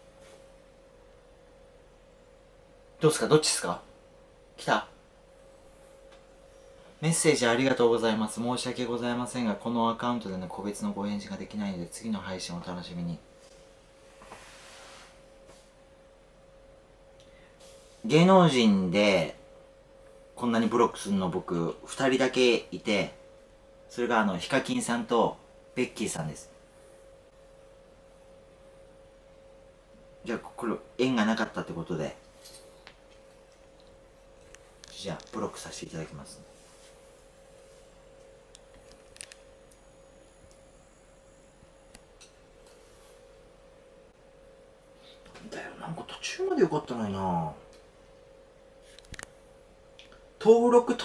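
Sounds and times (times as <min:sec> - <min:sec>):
faint steady hum: 0:00.0 - 0:51.0
faint steady pure tone: 0:00.0 - 0:51.0.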